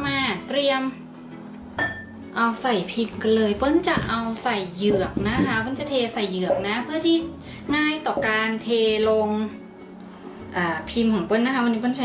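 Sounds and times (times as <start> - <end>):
glass bowl clinking: 1.8 - 2.2.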